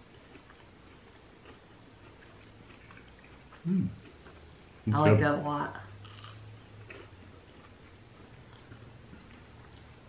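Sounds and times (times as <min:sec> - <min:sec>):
toast crunching when chewed: 0:00.0 - 0:04.7, 0:06.0 - 0:10.0
low steady hum: 0:00.0 - 0:10.0.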